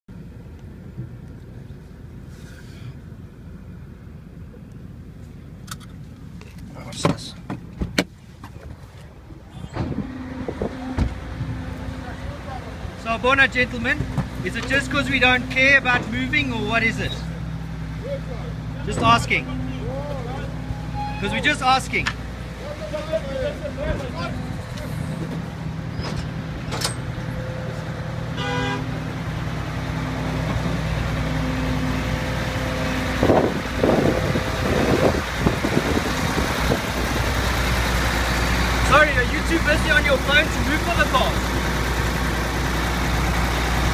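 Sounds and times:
idling vehicles rumble: 0.1 - 43.9
horn toot: 20.5 - 21.9, 28.3 - 29.1.

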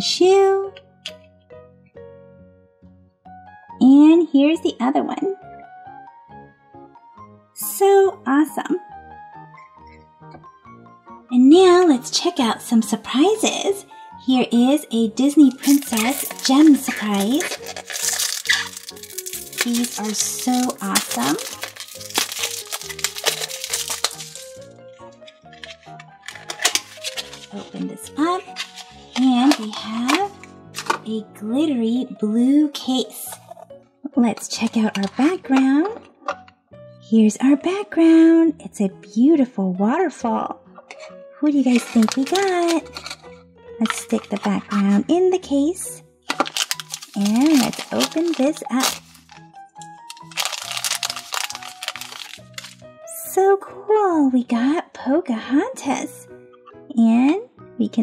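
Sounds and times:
light background music: 0.0 - 58.0
plastic packet crinkling and tearing: 15.4 - 27.6, 28.4 - 31.0, 41.7 - 44.7, 46.3 - 52.9
plastic wrap crackling: 15.4 - 31.0, 41.7 - 44.8, 46.3 - 52.9.

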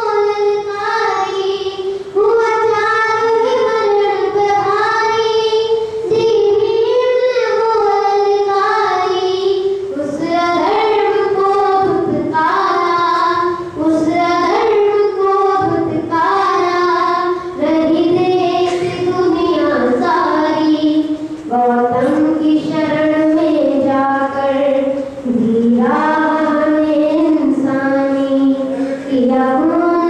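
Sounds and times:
boy singing: 0.0 - 30.0.

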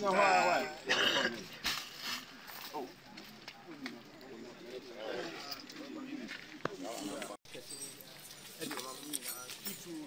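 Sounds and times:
people talking: 2.5 - 10.0.

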